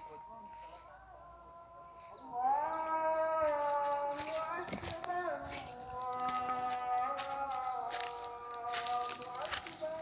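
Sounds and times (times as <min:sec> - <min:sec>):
person singing long held notes: 0:00.0 - 0:10.0.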